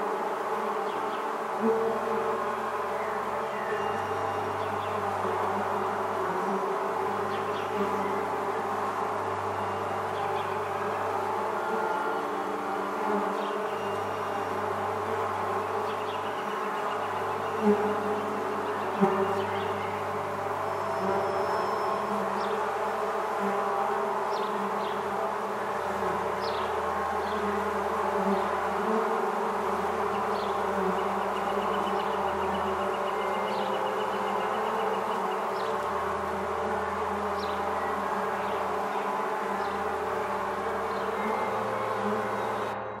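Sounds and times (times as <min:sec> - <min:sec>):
honeybee swarm buzzing: 0:00.0 - 0:42.8.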